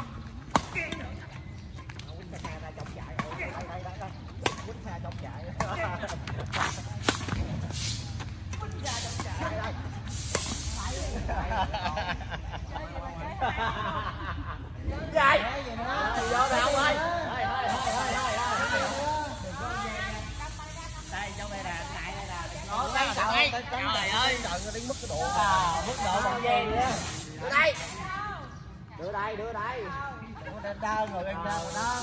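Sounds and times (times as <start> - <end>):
people talking and calling out: 0.0 - 32.0
players' voices: 0.0 - 32.0
shoes scraping on pavement: 6.0 - 9.3
steady high hiss: 8.8 - 11.8, 16.0 - 17.1, 17.7 - 28.2, 31.4 - 32.0.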